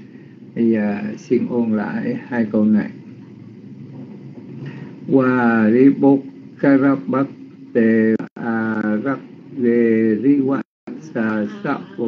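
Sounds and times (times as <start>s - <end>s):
faint background hiss: 0.0s - 12.0s
low hum: 0.0s - 12.0s.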